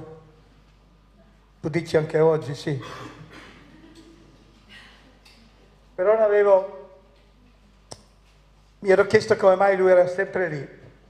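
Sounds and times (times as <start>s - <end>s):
man's amplified speech: 1.6s - 3.1s, 6.0s - 7.0s, 8.8s - 10.9s.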